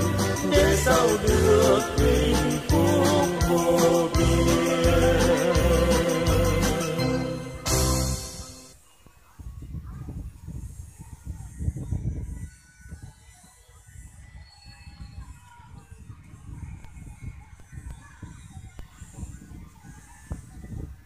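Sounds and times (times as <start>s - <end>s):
wind buffeting microphone: 9.3s - 21.0s.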